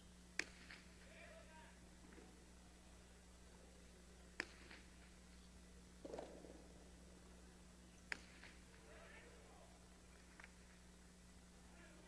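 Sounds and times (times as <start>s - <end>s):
hard ball striking: 0.4s - 0.9s, 4.4s - 4.9s, 8.1s - 8.6s.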